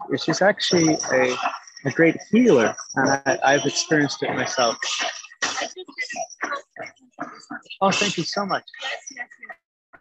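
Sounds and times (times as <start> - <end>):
person's voice in short bursts: 0.1 - 5.6, 7.8 - 9.0.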